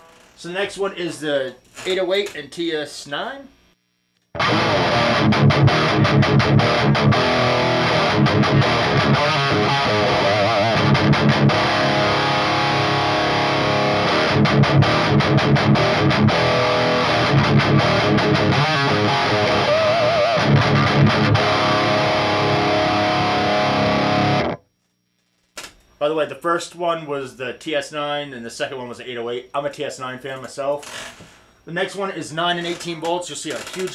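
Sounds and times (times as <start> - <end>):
distorted electric guitar riff: 0.0 - 0.4, 4.3 - 24.7.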